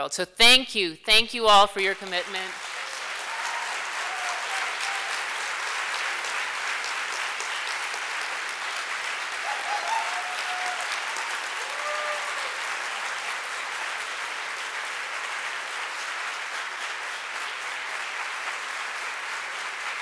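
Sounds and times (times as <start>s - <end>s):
dense applause: 2.0s - 20.0s
audience cheering: 2.2s - 13.8s.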